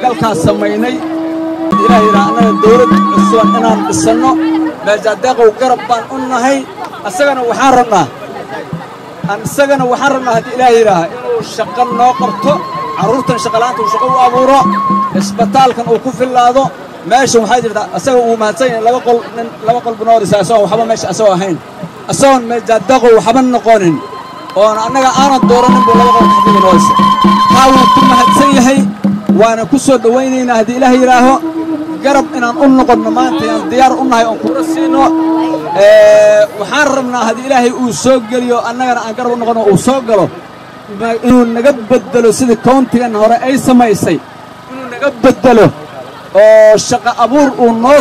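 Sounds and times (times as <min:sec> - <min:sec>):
man speaking into a microphone: 0:00.0 - 0:01.1, 0:01.7 - 0:08.2, 0:09.2 - 0:24.0, 0:24.6 - 0:31.4, 0:32.0 - 0:40.3, 0:40.9 - 0:48.0.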